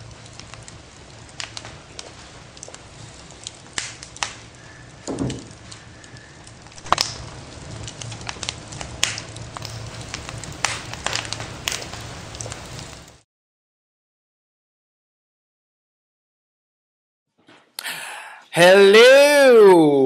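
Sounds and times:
wood fire crackling: 0.0 - 13.2.

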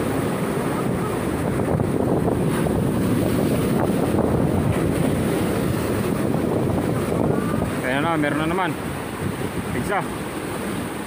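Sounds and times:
surf breaking over rocks: 0.0 - 11.0
wind buffeting microphone: 0.0 - 11.0.

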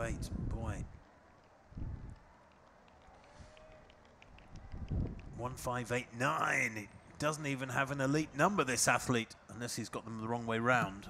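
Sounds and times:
faint street ambience: 0.0 - 11.0.

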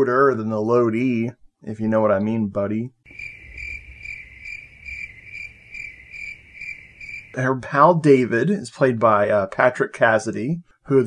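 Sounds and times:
crickets chirping: 3.1 - 7.4.

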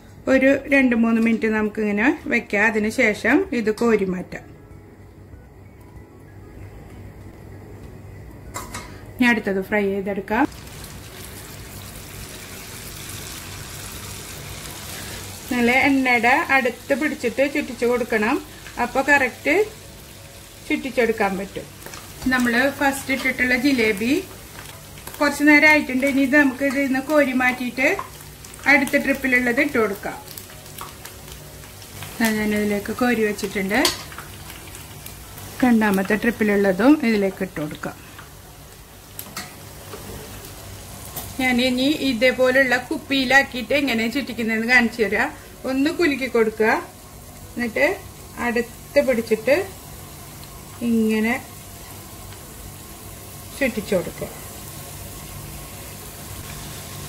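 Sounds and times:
batter sizzling in hot oil: 10.4 - 57.0.

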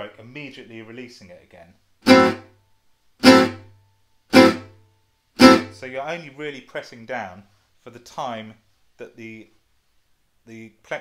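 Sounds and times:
acoustic guitar strums: 2.0 - 2.5, 3.2 - 5.9.

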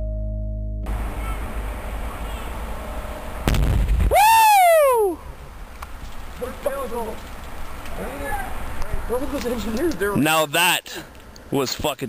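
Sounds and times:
outdoor ambience: 0.0 - 12.0
explosion blast with rumble: 3.4 - 4.2
person yelling: 4.1 - 5.2, 8.1 - 8.6.

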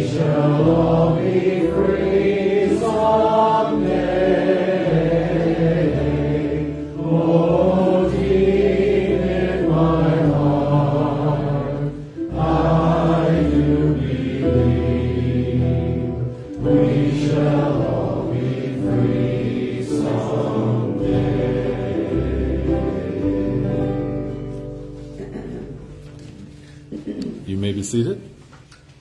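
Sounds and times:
strummed ukulele and guitars: 0.0 - 27.4
men singing a worship song: 2.2 - 11.8.

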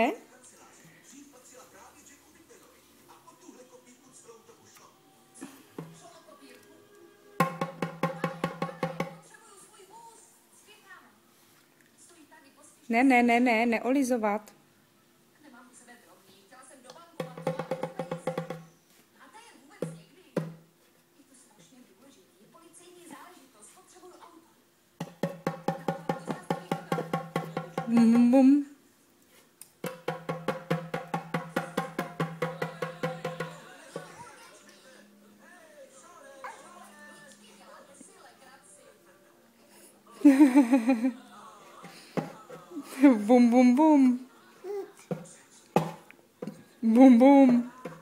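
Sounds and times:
djembe hand drum strokes: 7.4 - 9.2, 29.9 - 34.2.

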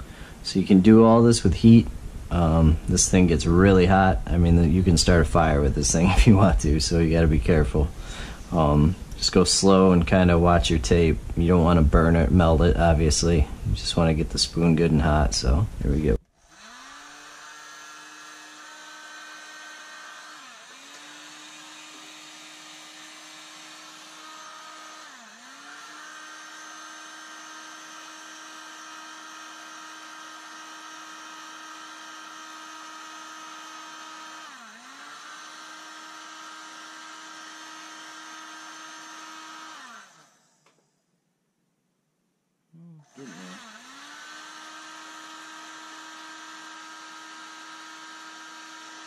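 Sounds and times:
heat gun fan humming: 0.0 - 41.1, 42.8 - 49.0.

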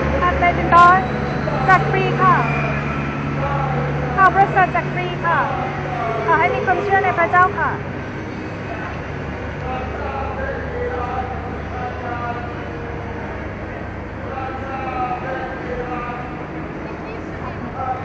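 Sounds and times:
low vehicle engine drone: 0.0 - 18.0
passersby talking: 0.0 - 18.0.

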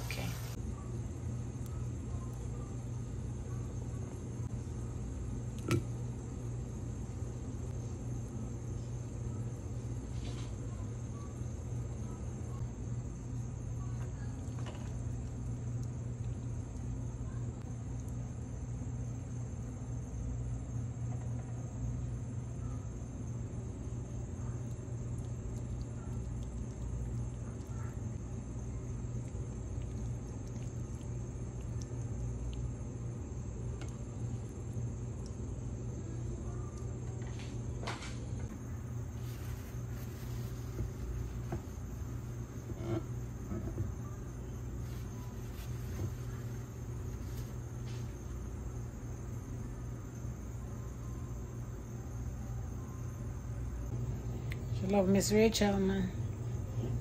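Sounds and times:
faint high whine: 0.0 - 57.0
steady low hum: 0.0 - 57.0.

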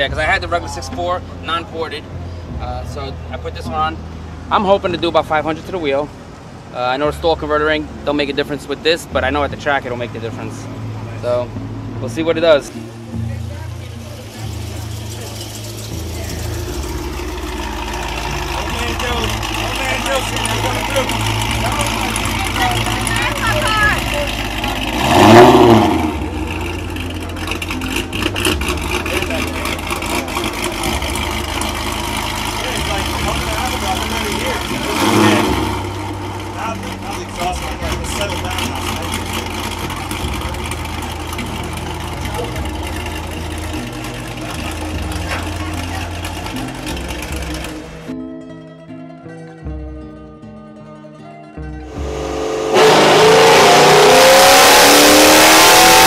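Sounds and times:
car engine idling and revving: 0.0 - 48.1, 51.6 - 56.0.

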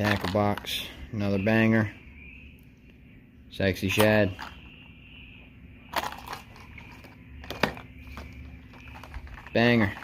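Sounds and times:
plastic blister packs crinkling: 5.9 - 10.0.

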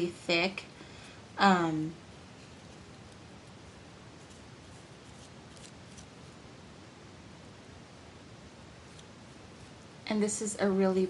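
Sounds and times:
faint room hiss: 0.0 - 11.0
paintbrush rustling on paper: 1.4 - 6.4, 8.8 - 10.1.

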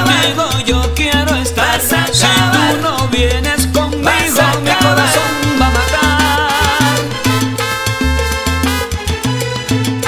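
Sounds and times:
repeating bass line: 0.0 - 10.0
salsa orchestra playing: 0.0 - 10.0.

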